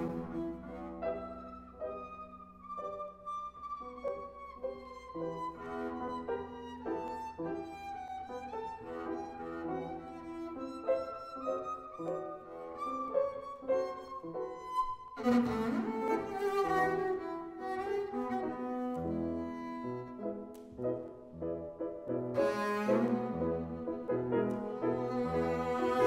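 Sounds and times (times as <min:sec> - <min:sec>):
double bass bowed: 0:00.0 - 0:13.5, 0:14.4 - 0:20.4, 0:22.1 - 0:26.0
piano accompaniment: 0:00.0 - 0:26.0.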